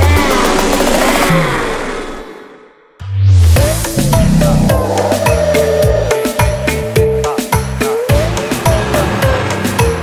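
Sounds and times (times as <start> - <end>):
whooshing rumble sound effect: 3.0 - 5.5.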